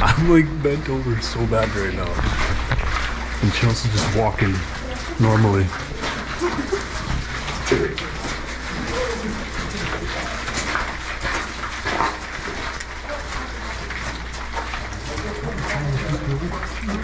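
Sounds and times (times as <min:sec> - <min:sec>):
shuffling footsteps: 0:00.0 - 0:17.0
steady low hum: 0:00.0 - 0:17.0
faint murmured voices: 0:03.4 - 0:11.0, 0:12.6 - 0:17.0.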